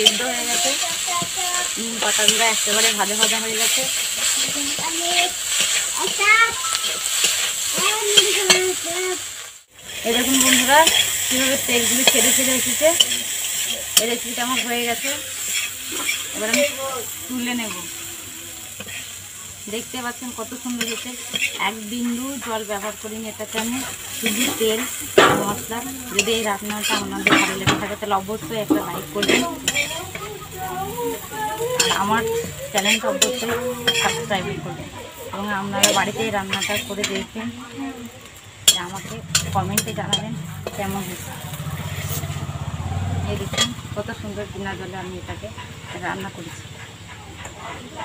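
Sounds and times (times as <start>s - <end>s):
metal spatula scraping a pan: 0.0s - 8.8s, 9.8s - 18.0s, 20.4s - 37.5s, 38.6s - 43.9s
vegetables sizzling in oil: 0.0s - 48.0s.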